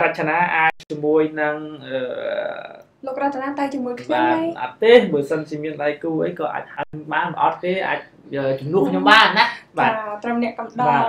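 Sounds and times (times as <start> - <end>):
person speaking: 0.0 - 2.8, 3.4 - 11.0.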